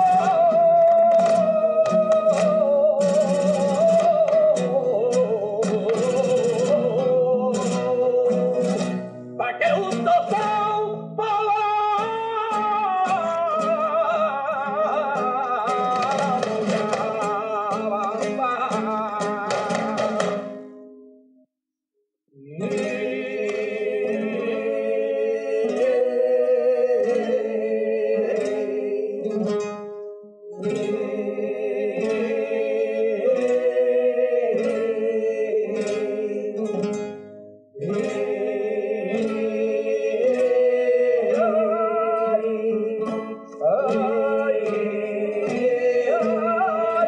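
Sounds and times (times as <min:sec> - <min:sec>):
man singing ornamented line: 0:00.0 - 0:20.7, 0:22.4 - 0:47.0
spanish guitar: 0:00.0 - 0:21.5, 0:22.4 - 0:47.0.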